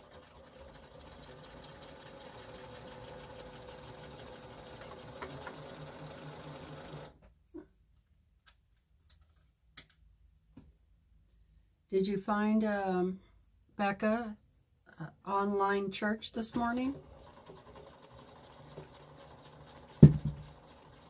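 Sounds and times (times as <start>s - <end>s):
sewing machine motor running: 0.0s - 7.2s, 16.5s - 21.0s.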